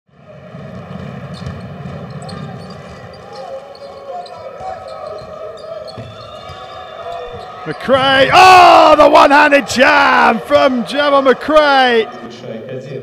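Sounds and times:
crowd voices in hall: 0:00.1 - 0:13.0.

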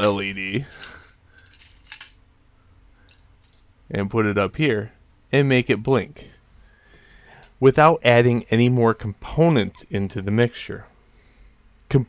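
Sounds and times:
small parts clicking on tabletop: 0:00.0 - 0:02.2, 0:03.1 - 0:03.7.

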